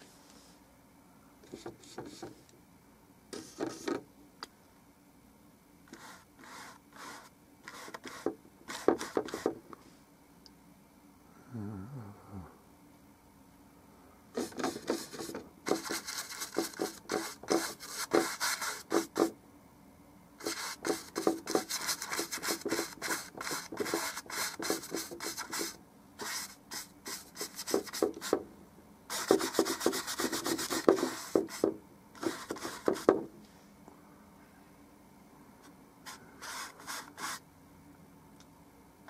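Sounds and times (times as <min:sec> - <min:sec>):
paintbrush scratching on canvas: 0:05.9 - 0:09.5, 0:14.4 - 0:19.3, 0:20.4 - 0:28.4, 0:29.1 - 0:33.2, 0:36.1 - 0:37.4.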